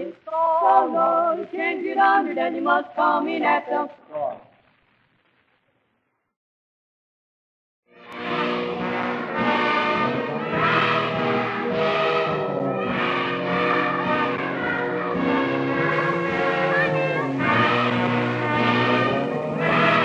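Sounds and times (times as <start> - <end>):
sustained layered chords music: 8.1 - 20.0.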